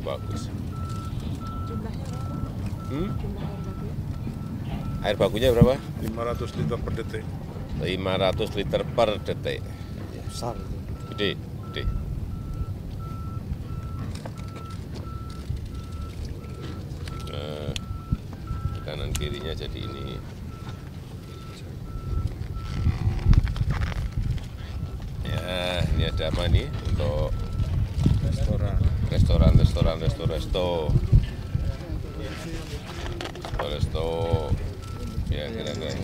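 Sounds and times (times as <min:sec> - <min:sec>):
reversing alarm beeping: 0:00.0 - 0:36.0.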